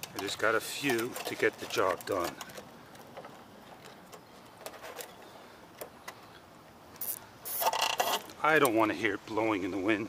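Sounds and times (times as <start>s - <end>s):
quiet outdoor background: 0.0s - 10.0s.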